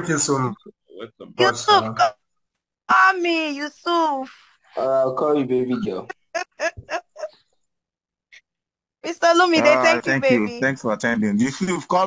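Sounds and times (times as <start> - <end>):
person laughing: 6.2 - 7.3.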